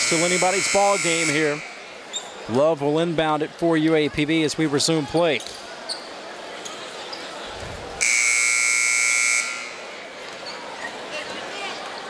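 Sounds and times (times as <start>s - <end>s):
scoreboard buzzer blast: 0.0s - 1.8s, 8.0s - 9.8s.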